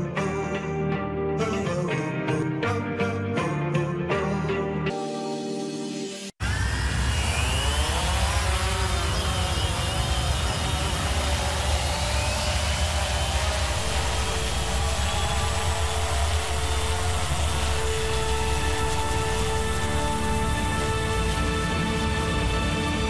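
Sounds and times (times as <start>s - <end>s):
deep engine-like drone: 6.4s - 23.0s.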